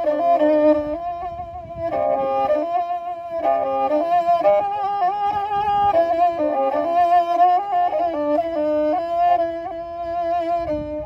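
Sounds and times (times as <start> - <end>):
bowed fiddle melody: 0.0 - 11.0.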